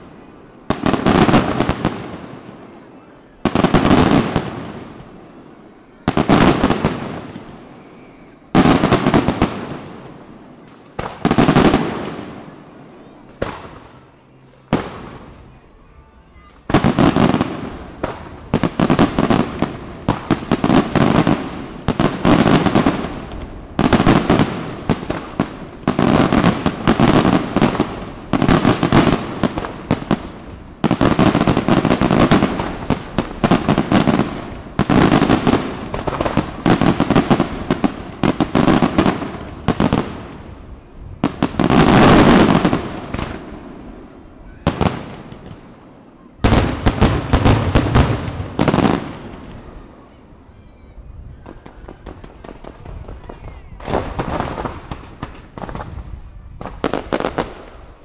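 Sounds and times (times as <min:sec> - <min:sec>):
fireworks crackling bursts: 0:00.0 - 0:58.0.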